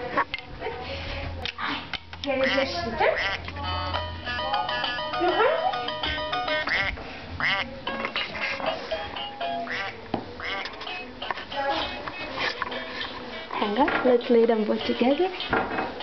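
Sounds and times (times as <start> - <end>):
quack-like toy calls: 2.4 - 3.5, 6.5 - 8.7, 9.6 - 10.8
electronic toy melody: 3.3 - 7.0, 7.9 - 11.1.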